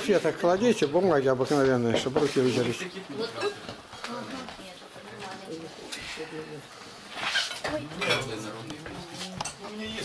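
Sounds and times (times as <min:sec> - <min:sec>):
dishes and cutlery clinking: 0:00.6 - 0:03.9, 0:07.1 - 0:10.0.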